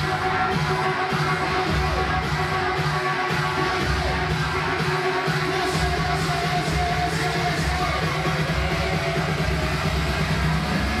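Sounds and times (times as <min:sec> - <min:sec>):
heavy low bass: 0:00.0 - 0:11.0.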